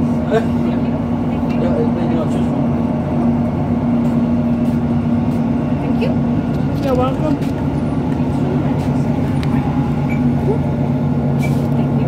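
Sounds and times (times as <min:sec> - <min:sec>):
train diesel engine rumble: 0:00.0 - 0:12.0.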